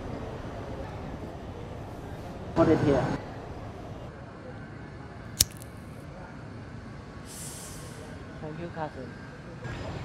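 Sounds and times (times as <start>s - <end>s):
short soft hiss: 5.4s - 5.6s
sharp click: 5.4s - 5.7s.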